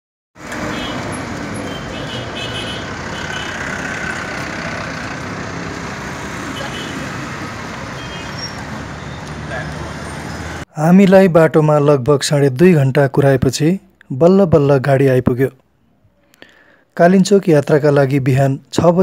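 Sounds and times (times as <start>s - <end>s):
buses and vehicles passing: 0.4s - 10.7s.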